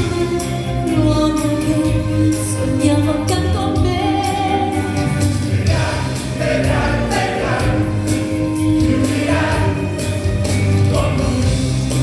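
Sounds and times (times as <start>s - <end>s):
voices singing together: 4.6s - 12.0s.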